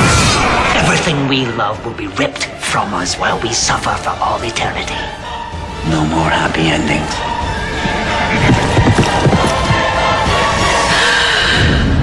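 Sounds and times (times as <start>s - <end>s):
dramatic music: 0.0s - 12.0s
galloping hoofbeats: 7.8s - 10.1s.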